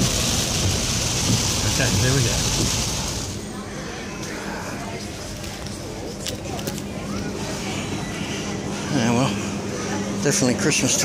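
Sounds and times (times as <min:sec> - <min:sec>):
heavy rain on car roof: 0:00.0 - 0:03.4
low road noise: 0:00.0 - 0:08.8.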